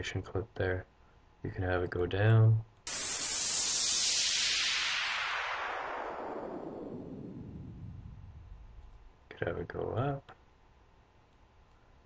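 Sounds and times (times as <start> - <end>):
falling noise sweep: 2.9 - 8.8.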